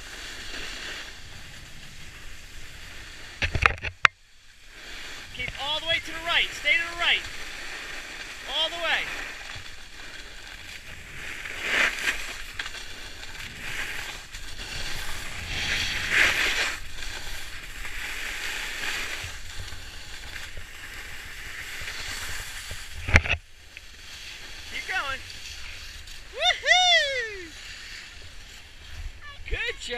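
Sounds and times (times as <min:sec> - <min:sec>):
ski scraping swishes: 0:00.0 - 0:03.4, 0:04.4 - 0:29.9
skis hissing on snow: 0:00.0 - 0:03.4, 0:04.3 - 0:29.9.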